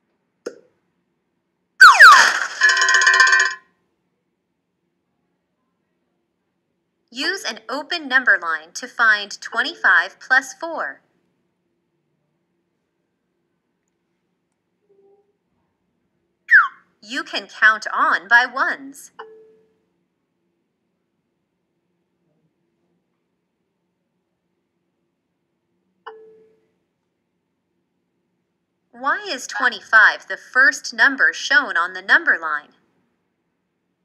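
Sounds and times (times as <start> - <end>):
falling whistle glide: 1.8 - 2.5, 16.5 - 16.8.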